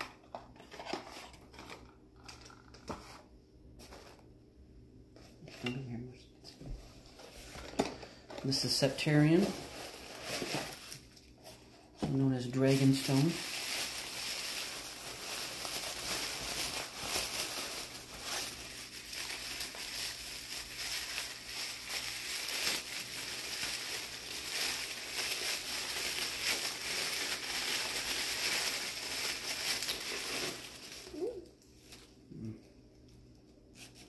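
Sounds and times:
tissue paper crinkling: 0:08.4 - 0:32.2.

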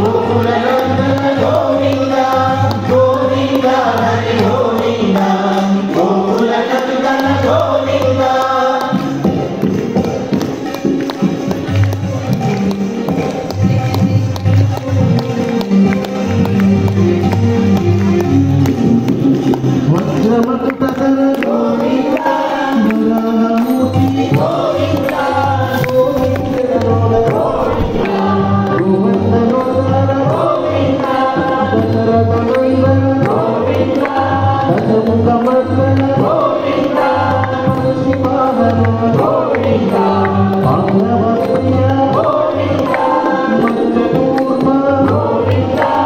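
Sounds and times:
percussion beat: 0:00.0 - 0:46.0.

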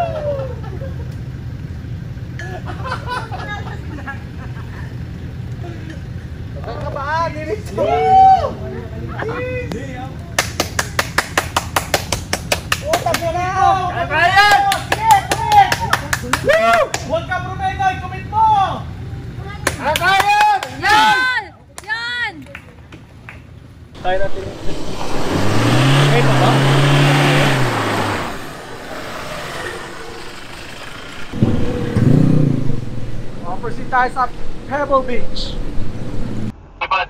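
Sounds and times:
men yelling and whooping: 0:00.0 - 0:01.0, 0:06.8 - 0:10.2, 0:12.8 - 0:18.9, 0:19.8 - 0:22.3, 0:25.2 - 0:30.3
truck engine rumbling: 0:00.0 - 0:21.4, 0:23.0 - 0:36.5.

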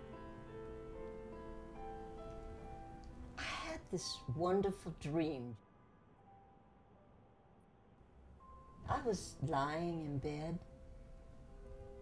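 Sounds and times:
woman's voice: 0:03.4 - 0:05.6, 0:08.8 - 0:10.7.

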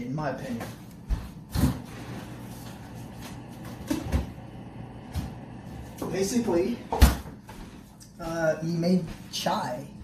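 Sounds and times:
footsteps on floor: 0:00.5 - 0:04.1, 0:07.0 - 0:09.5.

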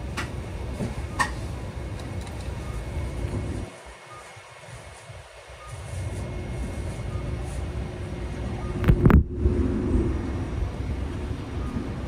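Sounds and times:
tram hum: 0:00.0 - 0:12.0.

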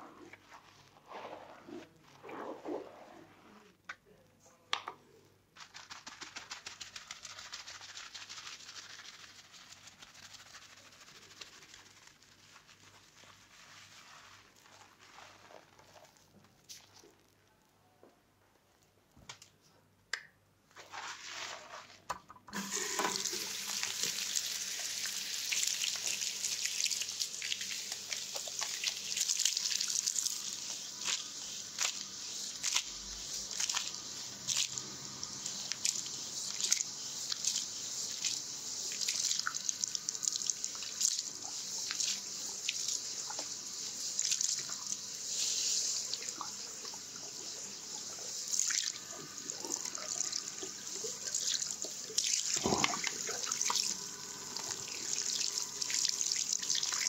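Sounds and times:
wet scalp rubbing: 0:00.1 - 0:03.8, 0:05.6 - 0:17.2
water splashing into sink: 0:20.8 - 0:30.2, 0:46.1 - 0:57.0
shower sprayer water hiss: 0:22.5 - 0:57.0.

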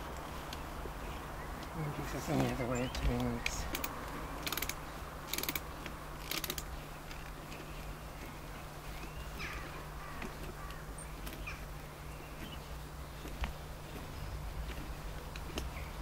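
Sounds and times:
hand drill gears clattering: 0:03.5 - 0:05.6, 0:06.2 - 0:07.6.

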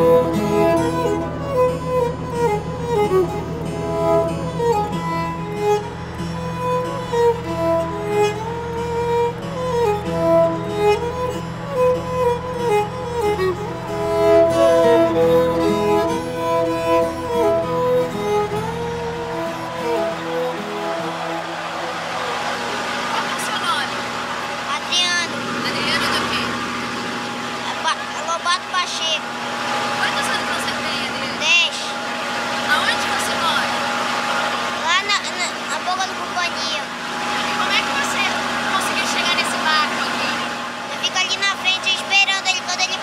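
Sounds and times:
boat engine drone: 0:00.0 - 0:43.0
people calling out: 0:13.7 - 0:26.5.

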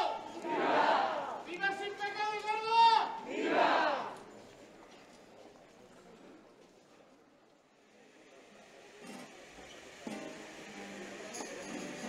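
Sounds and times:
man shouting a long call: 0:00.0 - 0:00.2, 0:01.6 - 0:03.2
crowd shouting back: 0:00.0 - 0:04.2.

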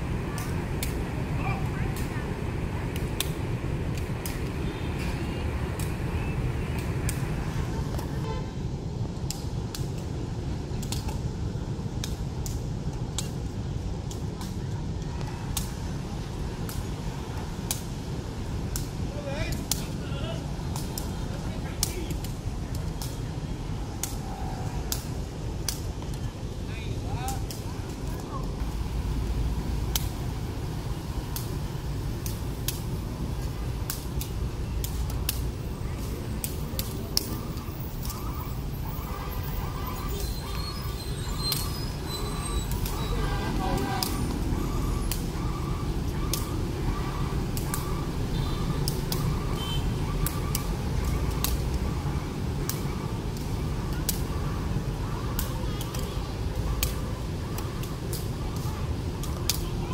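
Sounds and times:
road traffic rumble: 0:00.0 - 0:59.9
foot tapping shuttlecock: 0:00.1 - 0:08.2, 0:18.6 - 0:23.3, 0:24.8 - 0:26.5, 0:29.8 - 0:38.4, 0:42.6 - 0:44.5, 0:45.1 - 0:48.0, 0:50.1 - 0:59.9.

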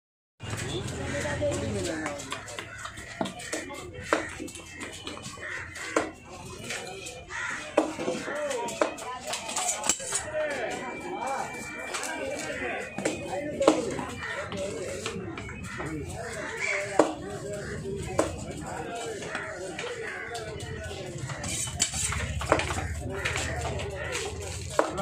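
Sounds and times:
people talking: 0:00.4 - 0:25.0.

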